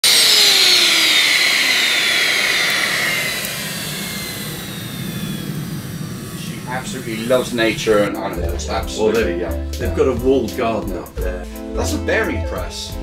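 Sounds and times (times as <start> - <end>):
jet engine spooling down: 0.0 - 10.0.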